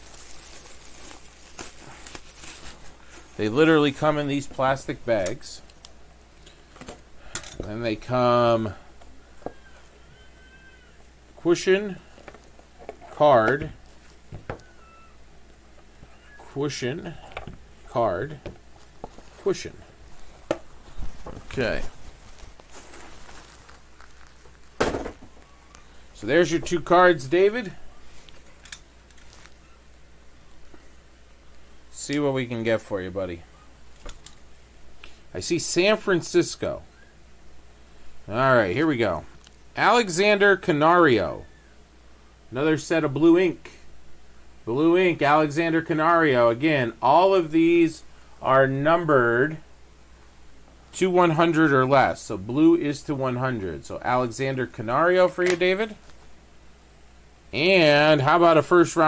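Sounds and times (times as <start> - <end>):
plastic bag crinkling: 0.0 - 3.5, 18.6 - 26.9, 28.0 - 29.6
low steady hum: 0.0 - 59.0.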